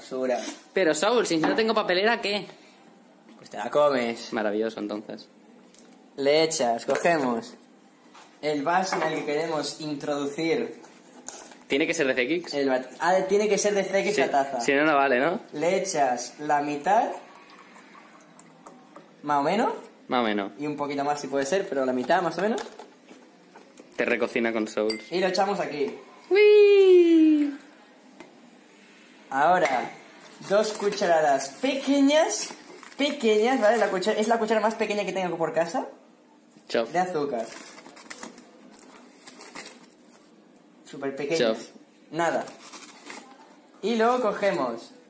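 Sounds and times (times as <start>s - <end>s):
milk pouring into a mug: 16.7s - 19.2s
paper bag rustling: 30.2s - 34.3s, 37.2s - 40.3s, 42.3s - 43.4s.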